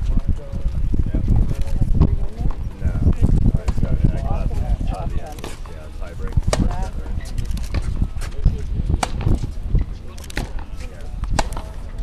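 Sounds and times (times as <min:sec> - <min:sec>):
tennis balls hit by racquets: 0:01.9 - 0:04.0, 0:04.9 - 0:12.0
tennis balls bouncing on court: 0:05.3 - 0:07.0, 0:07.6 - 0:12.0.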